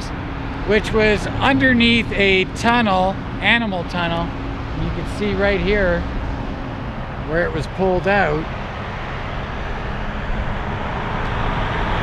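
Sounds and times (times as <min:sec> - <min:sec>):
vehicle passing on highway: 0:00.0 - 0:12.0.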